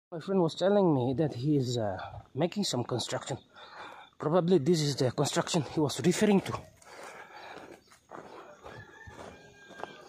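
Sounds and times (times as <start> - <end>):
rooster crowing: 8.2 - 10.0.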